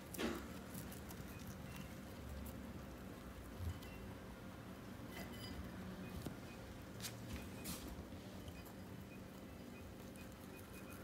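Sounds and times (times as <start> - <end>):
rabbit chewing: 0.0 - 4.7, 6.1 - 11.0.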